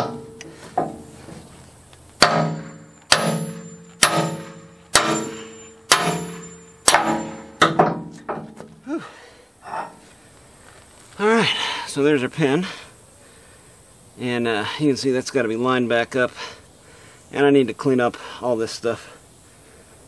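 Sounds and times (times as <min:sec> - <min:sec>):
sledgehammer striking steel pin: 0:00.0 - 0:01.2, 0:02.2 - 0:08.7.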